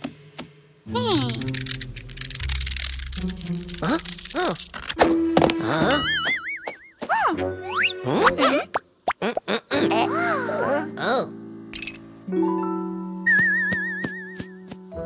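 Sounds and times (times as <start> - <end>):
cartoon background music: 0.9 - 15.0.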